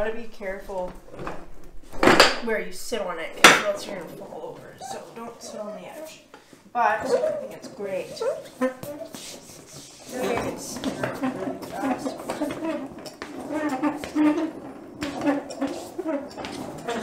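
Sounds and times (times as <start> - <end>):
woman's wordless voice: 0.0 - 1.1, 2.4 - 9.3, 9.9 - 12.8.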